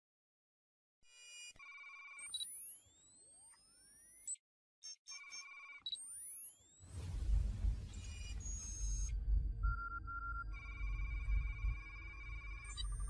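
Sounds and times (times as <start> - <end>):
warbling electronic beeps: 5.1 - 13.0
rising whistling sweeps: 6.9 - 13.0.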